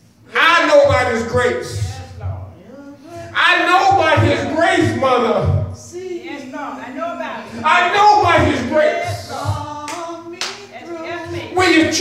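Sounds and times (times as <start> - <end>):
faint congregation voices: 0.0 - 12.0.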